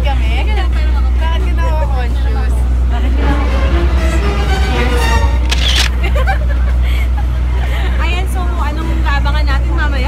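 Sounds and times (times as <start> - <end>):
ferry engine drone: 0.0 - 10.0
passengers talking: 0.0 - 10.0.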